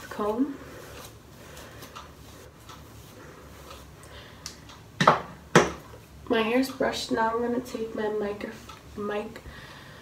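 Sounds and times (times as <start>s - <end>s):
comb rustling through wet hair: 0.0s - 4.0s.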